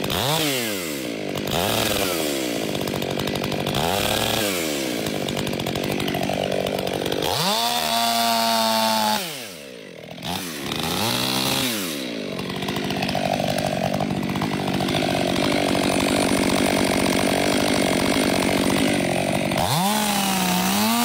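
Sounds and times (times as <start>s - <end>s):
chainsaw cutting through tree trunk: 0.0s - 21.0s.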